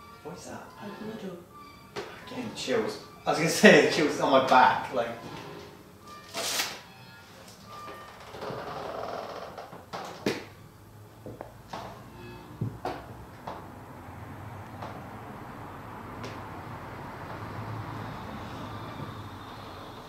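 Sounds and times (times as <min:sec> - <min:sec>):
wooden door scraping: 0:07.9 - 0:10.2.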